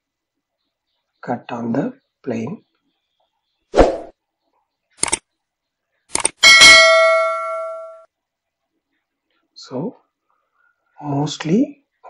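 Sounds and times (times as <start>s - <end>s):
bell ding: 6.4s - 8.1s.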